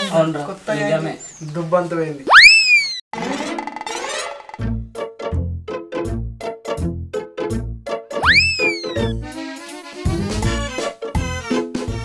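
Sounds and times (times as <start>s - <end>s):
comic pitched swoop: 2.3s - 3.0s.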